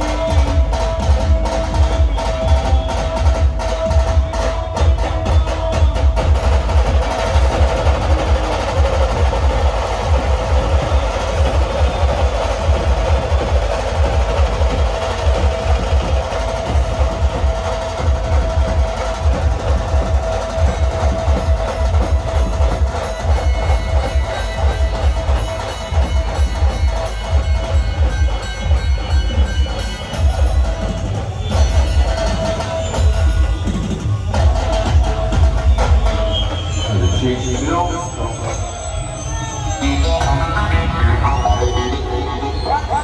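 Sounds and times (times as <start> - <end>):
loud drum music over loudspeakers: 0.0 - 43.0.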